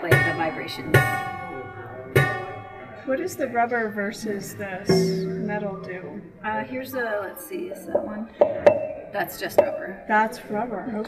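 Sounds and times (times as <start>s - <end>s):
prepared piano notes ringing: 0.0s - 6.7s.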